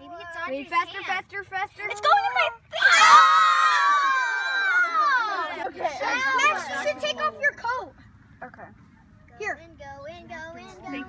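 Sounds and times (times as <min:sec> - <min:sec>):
children screaming: 0:02.7 - 0:05.6.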